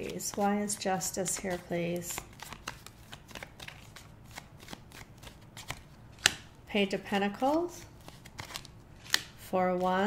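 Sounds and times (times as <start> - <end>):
cards being shuffled by hand: 0.0 - 10.0.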